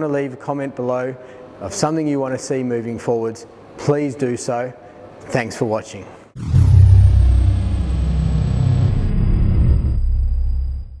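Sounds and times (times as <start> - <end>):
deep loud rumble: 6.4 - 11.0.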